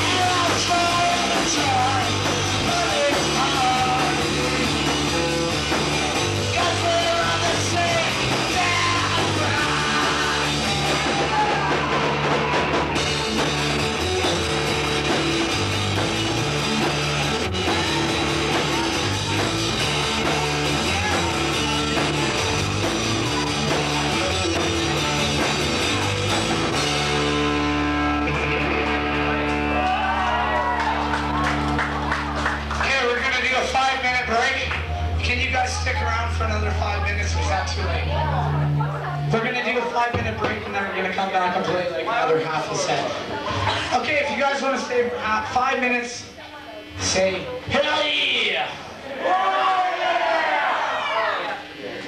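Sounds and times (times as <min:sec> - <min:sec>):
electric guitar: 0:00.0 - 0:39.4
drum kit: 0:00.0 - 0:42.0
indistinct voices calling out: 0:06.5 - 0:13.5.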